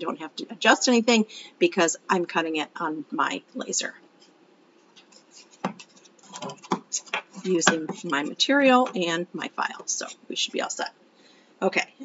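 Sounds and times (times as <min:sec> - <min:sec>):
wood pieces rubbing: 0:04.8 - 0:09.0
wood knocking on wood: 0:05.6 - 0:08.2.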